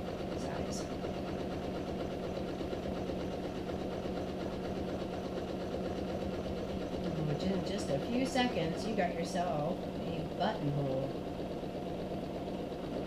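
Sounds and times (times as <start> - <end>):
sewing machine stitching: 0.0 - 13.0.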